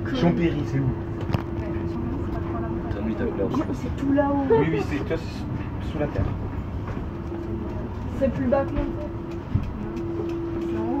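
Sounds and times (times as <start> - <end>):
electric train whine: 0.0 - 11.0.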